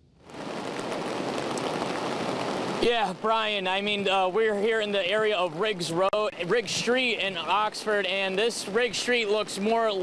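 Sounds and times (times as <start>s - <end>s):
heavy rain on an umbrella: 0.2s - 10.0s
man speaking: 2.8s - 10.0s.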